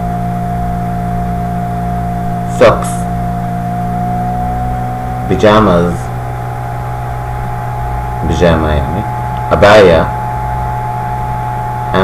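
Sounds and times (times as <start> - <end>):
steady background hum: 0.0 - 12.0
thin steady whine: 0.0 - 12.0.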